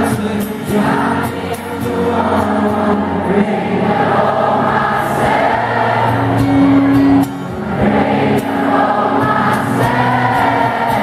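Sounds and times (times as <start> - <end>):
acoustic guitar strumming: 0.0 - 11.0
crowd singing along: 0.0 - 11.0.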